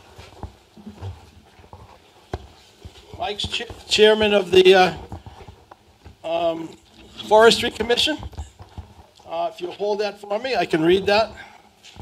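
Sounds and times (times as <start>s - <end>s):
handling noise: 0.0s - 9.9s.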